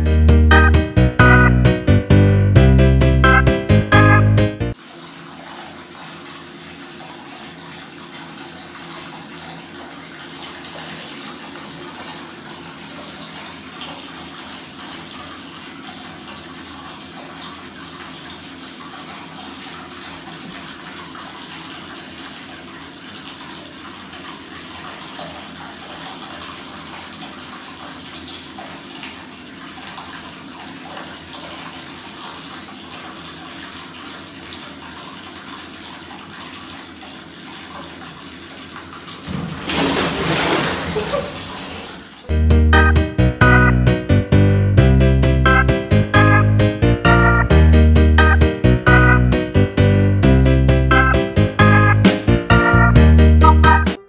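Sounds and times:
tap water running into bathtub: 4.7 - 44.0, 44.9 - 54.0.

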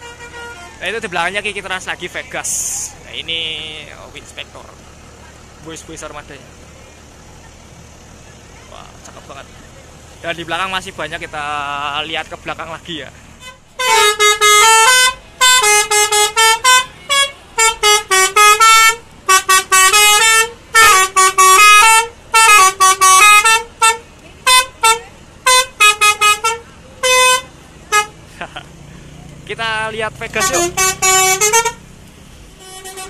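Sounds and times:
melodic bus horn: 0.0 - 4.0, 13.3 - 28.3, 30.3 - 31.9, 32.5 - 33.0.

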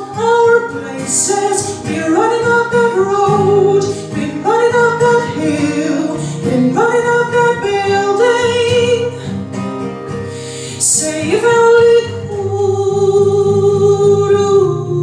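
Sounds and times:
woman singing: 0.0 - 9.6, 10.2 - 15.0.

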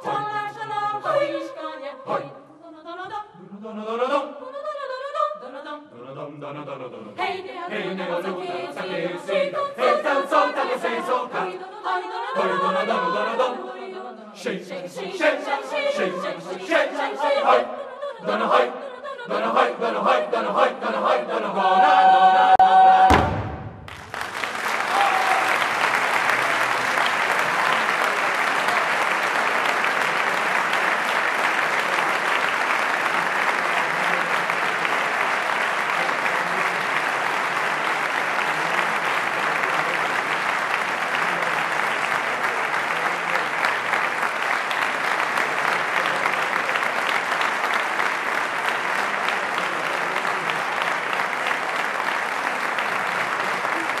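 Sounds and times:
audience applauding: 23.1 - 54.0.

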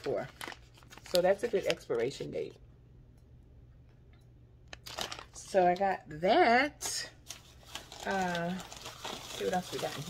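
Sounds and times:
plastic pouch crinkling: 0.0 - 1.9, 4.8 - 5.6, 7.2 - 10.0.

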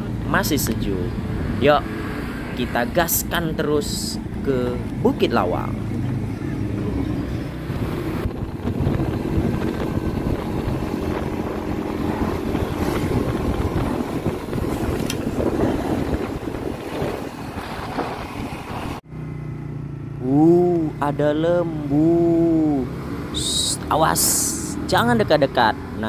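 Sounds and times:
motorbike engine running: 3.7 - 22.7
wind buffeting microphone: 5.9 - 19.0.

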